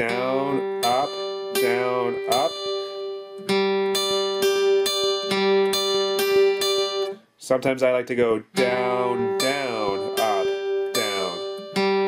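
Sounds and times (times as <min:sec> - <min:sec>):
acoustic guitar arpeggio: 0:00.0 - 0:07.3, 0:08.4 - 0:12.0.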